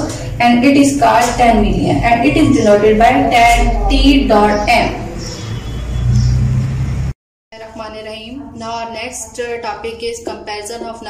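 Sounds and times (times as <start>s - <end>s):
steady low hum: 0.0s - 9.0s.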